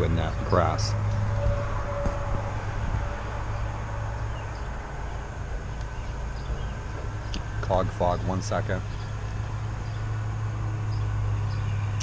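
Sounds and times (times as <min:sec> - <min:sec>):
lawn mower engines running: 0:00.0 - 0:01.3, 0:02.1 - 0:12.0.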